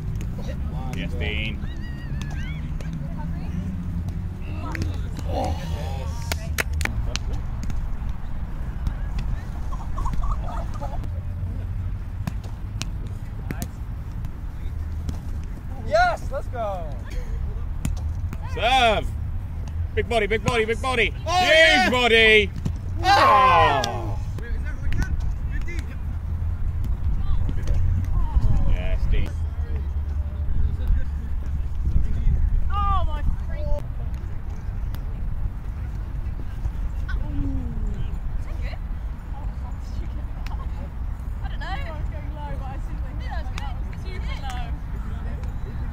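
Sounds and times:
high-pitched shout: 23.0s - 24.2s.

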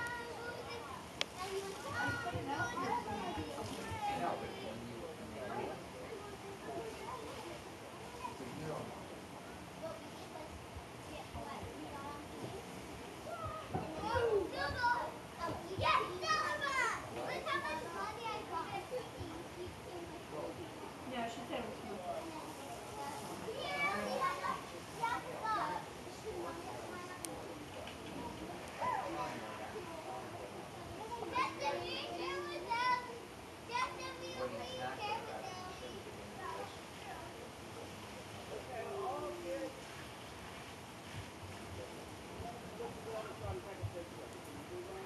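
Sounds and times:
children calling out and shouting: 0.0s - 4.6s, 13.2s - 19.6s, 23.5s - 25.8s, 30.9s - 36.0s.

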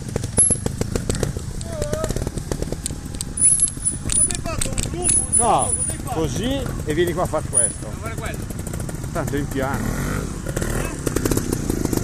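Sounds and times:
motorcycle engine idling: 0.0s - 12.0s
rapid irregular engine ticking: 0.0s - 12.0s.

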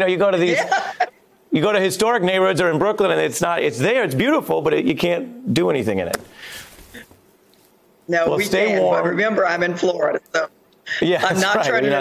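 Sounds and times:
person speaking: 2.6s - 7.1s.

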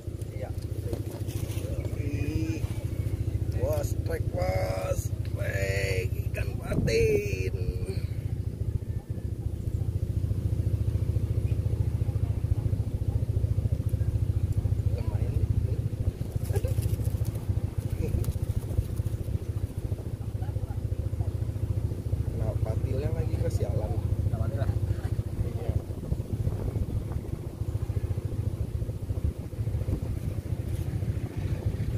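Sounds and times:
faint voices: 0.0s - 29.1s
low engine-like hum: 0.0s - 31.9s.

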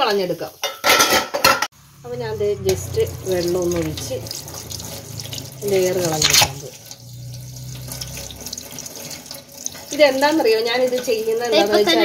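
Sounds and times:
water splashing over metal lid: 2.5s - 12.0s
tap water running into sink: 2.6s - 12.0s.

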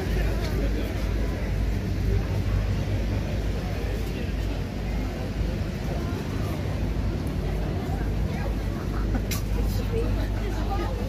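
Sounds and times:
crowd chatter: 0.0s - 11.0s
steady low rumble: 0.0s - 11.0s.

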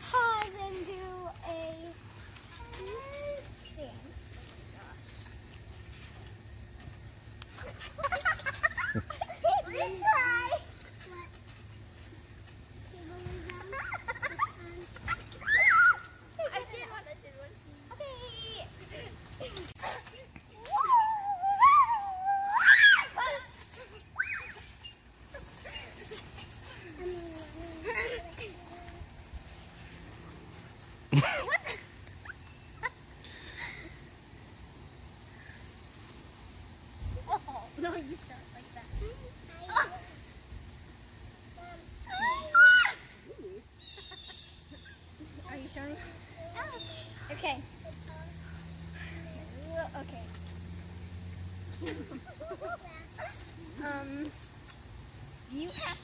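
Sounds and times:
girl's high-pitched squeal: 15.3s - 16.2s, 20.6s - 24.7s, 41.6s - 43.4s.

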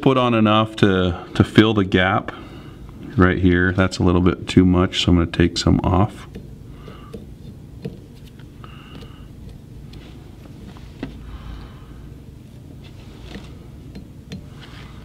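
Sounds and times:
low room hum: 0.0s - 15.0s
fingers rustling: 6.3s - 15.0s.

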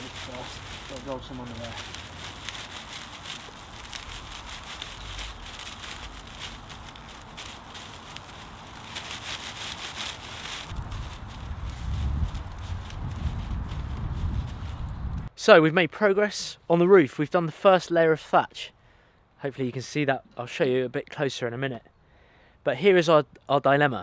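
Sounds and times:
dry reed thatch rustling and crackling: 0.0s - 15.3s.

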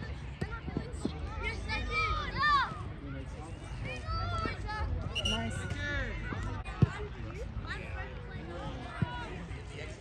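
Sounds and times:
soccer ball kick thud: 0.4s - 0.9s
players and spectators shouting: 1.4s - 3.3s.

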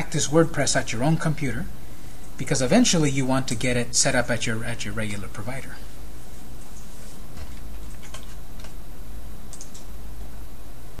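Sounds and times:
steady low hum: 0.0s - 11.0s
computer mouse clicks: 7.8s - 8.8s, 9.5s - 9.9s.

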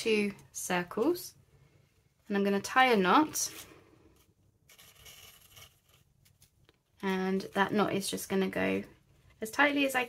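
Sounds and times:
twine scraping across paper: 3.3s - 6.6s.

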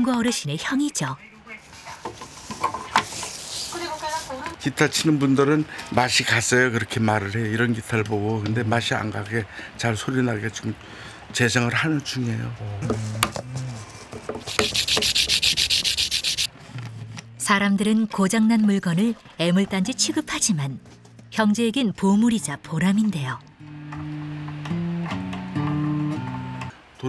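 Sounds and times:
sanding rasping: 14.4s - 16.5s.

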